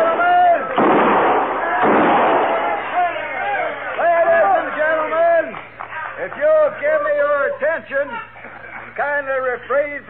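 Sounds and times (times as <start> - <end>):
gunshots: 0.7 - 3.0
men's raised voices: 2.5 - 5.6.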